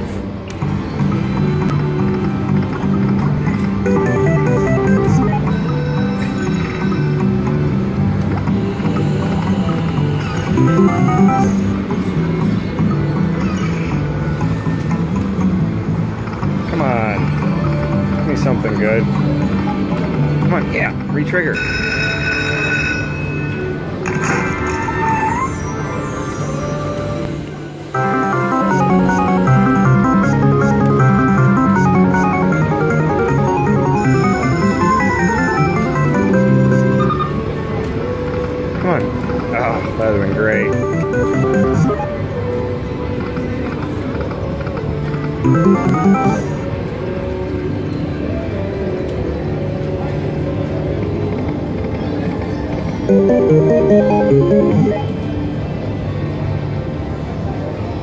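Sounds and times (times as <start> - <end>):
slot machine electronic music: 3.6 - 7.1, 10.3 - 11.8, 28.0 - 37.3, 39.9 - 42.4, 45.4 - 46.6, 53.1 - 55.3.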